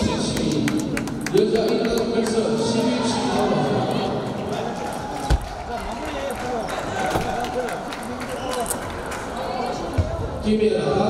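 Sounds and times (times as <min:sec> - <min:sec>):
voices in a busy hall: 0:00.0 - 0:11.0.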